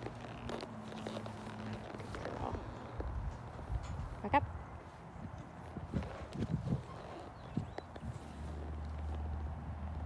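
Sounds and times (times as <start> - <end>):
horse hooves on dirt and straw: 0.0 - 4.2, 4.8 - 10.0.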